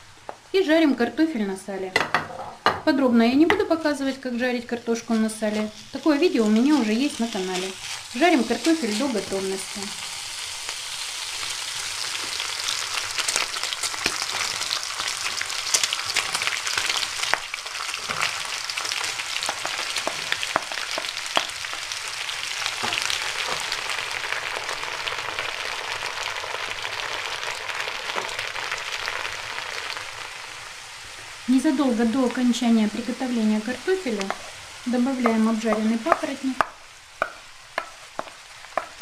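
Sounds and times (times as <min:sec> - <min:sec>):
fat sizzling in skillet: 0:03.1 - 0:39.0
sharp crackles and clicks: 0:12.1 - 0:21.9.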